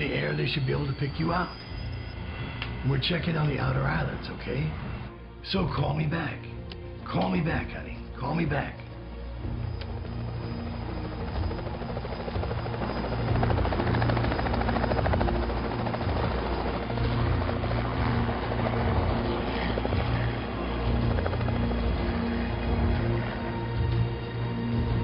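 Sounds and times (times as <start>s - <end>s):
helicopter rotor chopping: 9.0s - 25.0s.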